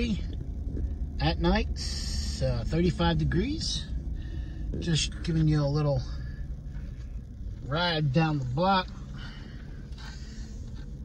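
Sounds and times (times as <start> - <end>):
engine and road rumble in cab: 0.0 - 11.0.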